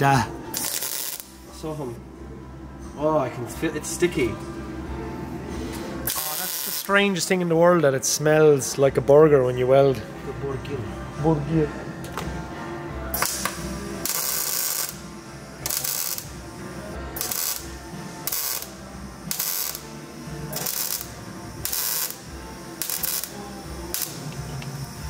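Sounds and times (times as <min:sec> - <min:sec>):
welder arc crackling: 0:00.5 - 0:01.8, 0:06.0 - 0:07.3, 0:13.2 - 0:25.0.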